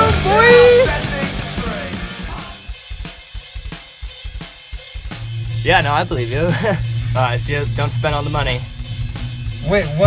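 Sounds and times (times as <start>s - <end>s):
rock drum kit playing a beat: 0.0s - 10.0s.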